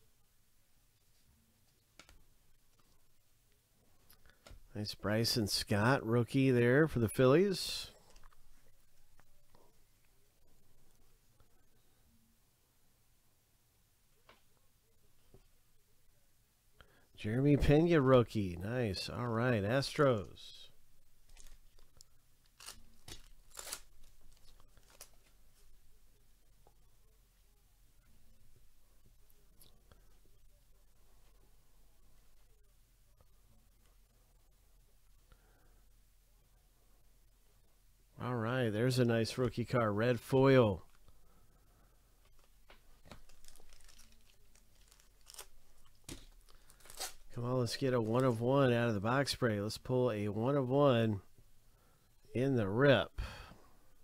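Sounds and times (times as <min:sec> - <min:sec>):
foil wrapper crinkling rips: 0:21.3 - 0:25.3, 0:43.0 - 0:47.4.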